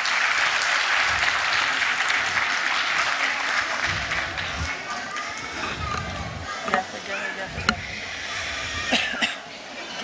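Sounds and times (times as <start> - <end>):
scattered claps: 0.0 - 8.5
audience voices: 0.0 - 10.0.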